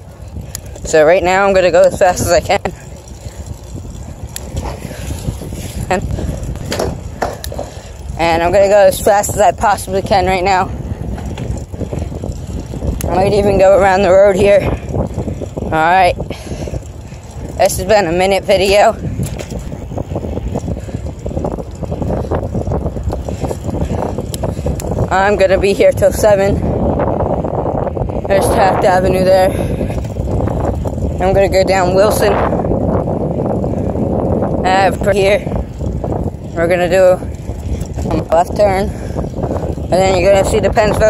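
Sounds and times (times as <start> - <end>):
bicycle tyres on asphalt: 0.0 - 41.0
wind buffeting microphone: 0.0 - 41.0.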